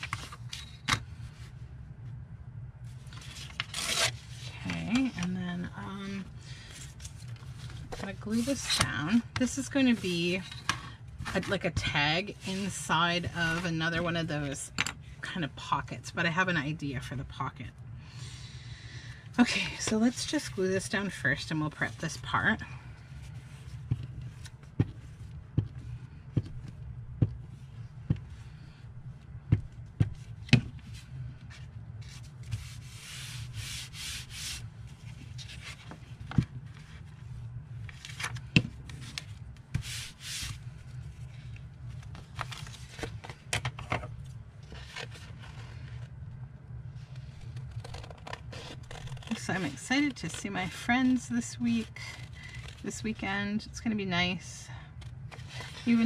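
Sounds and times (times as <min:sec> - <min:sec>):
paper handled and smoothed: 0:06.7 - 0:10.4, 0:23.2 - 0:37.2, 0:37.9 - 0:43.1.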